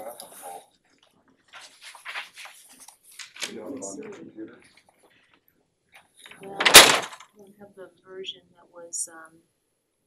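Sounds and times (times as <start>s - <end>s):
faint talk: 3.4s - 4.7s, 6.3s - 9.3s
loud thump: 6.6s - 7.2s.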